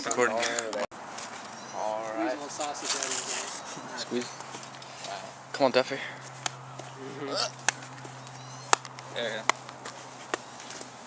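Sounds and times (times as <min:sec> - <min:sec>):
voices: 0:00.0 - 0:10.9.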